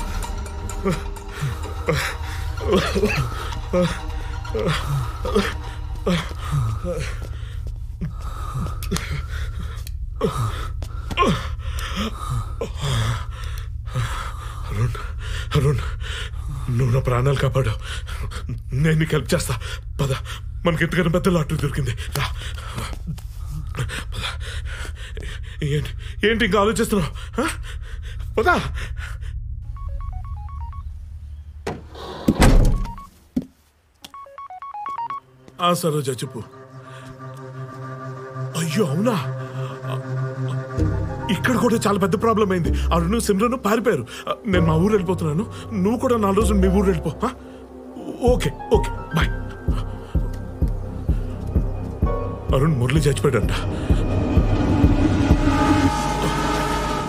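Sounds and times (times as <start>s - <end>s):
low music drone: 0.0s - 29.6s, 35.8s - 57.0s
man gasping and panting: 0.8s - 16.8s, 49.4s - 51.4s
phone keypad beep: 29.8s - 30.9s, 32.8s - 33.1s, 34.1s - 35.2s
steady low hum: 47.1s - 57.0s.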